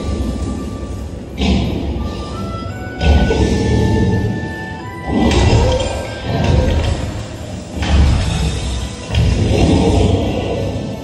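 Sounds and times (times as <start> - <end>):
dramatic music: 0.0 - 11.0.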